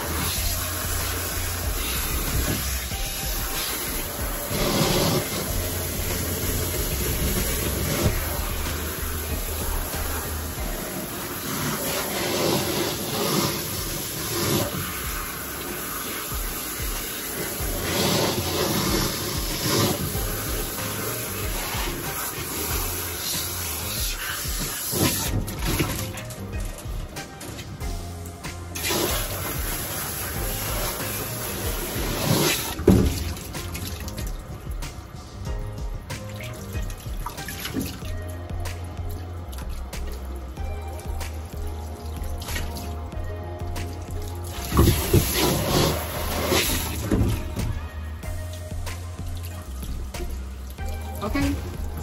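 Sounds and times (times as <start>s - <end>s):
background music: 0.0s - 52.0s
water spraying into metal tub: 0.0s - 52.0s.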